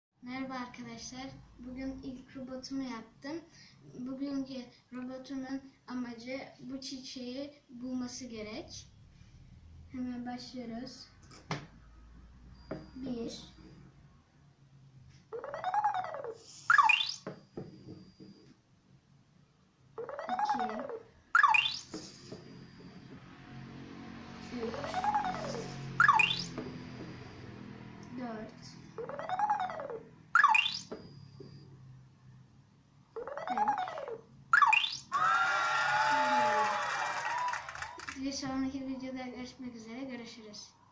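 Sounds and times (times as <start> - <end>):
rising and falling electronic tone: 15.4 - 17.2, 20.0 - 28.0, 28.9 - 31.6, 33.2 - 35.2
quick rising electronic chirp: 15.4 - 17.3, 20.0 - 27.6, 28.9 - 31.8, 33.2 - 35.2
noisy wavering electronic effect: 23.6 - 27.0.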